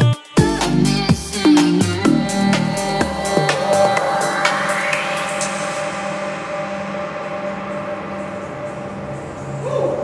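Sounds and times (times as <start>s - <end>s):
rising synth sweep: 1.7s - 10.0s
held synth chord: 1.9s - 9.7s.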